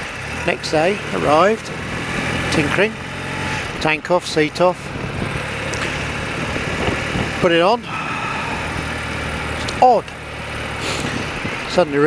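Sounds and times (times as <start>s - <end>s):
motorcycle engine running: 0.0s - 12.0s
road noise: 0.0s - 12.0s
wind noise: 4.8s - 9.0s, 10.8s - 11.7s.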